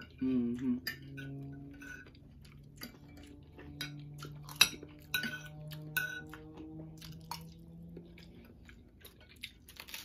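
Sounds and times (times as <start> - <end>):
faint low hum: 0.0 - 10.0
cutlery clinking on ceramic plates: 0.8 - 2.2, 2.9 - 6.5.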